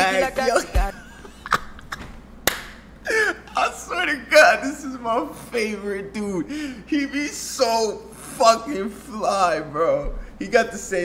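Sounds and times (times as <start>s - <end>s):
low background hiss: 0.0s - 11.0s.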